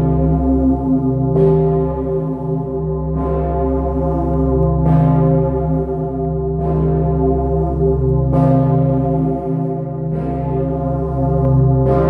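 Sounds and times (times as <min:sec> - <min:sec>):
deep bell hum: 0:00.0 - 0:12.0
large bell ringing: 0:00.0 - 0:12.0.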